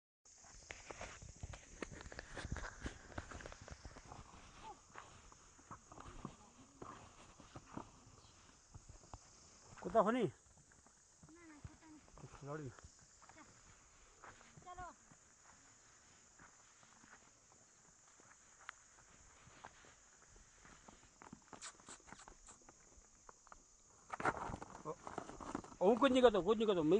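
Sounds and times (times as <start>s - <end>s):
footsteps on grass and stony ground: 0.3s - 23.6s
steady hiss: 0.3s - 24.2s.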